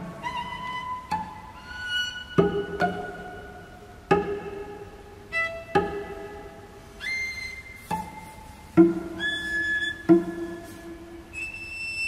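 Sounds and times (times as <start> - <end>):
high whistle-like cello tone: 0.0 - 3.6, 7.0 - 12.0.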